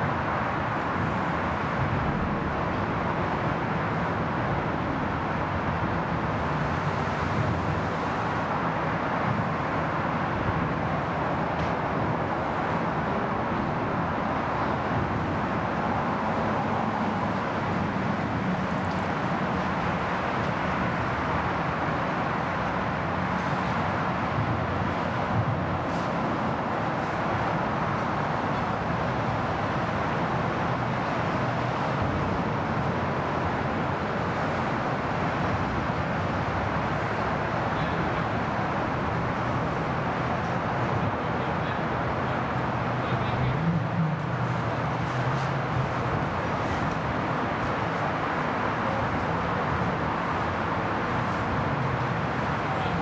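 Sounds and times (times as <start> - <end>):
road traffic rushing: 0.0 - 53.0.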